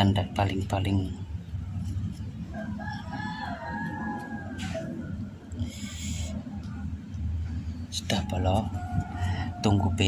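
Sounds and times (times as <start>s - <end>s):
rooster crowing: 2.5s - 5.4s, 8.2s - 10.0s.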